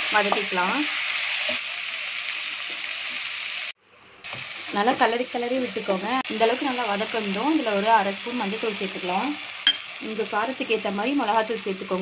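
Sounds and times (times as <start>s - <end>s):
vegetables sizzling in hot oil: 0.0s - 12.0s.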